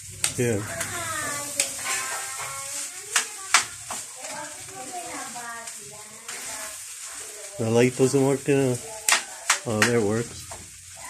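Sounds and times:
rice frying in a pan: 0:00.0 - 0:11.0
indistinct voices talking: 0:00.1 - 0:11.0
spatula striking pan: 0:00.2 - 0:04.9, 0:08.8 - 0:11.0.

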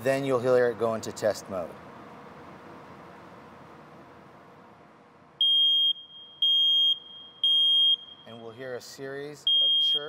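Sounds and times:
smoke alarm high-pitched beeps: 0:05.4 - 0:08.4, 0:09.4 - 0:10.0.

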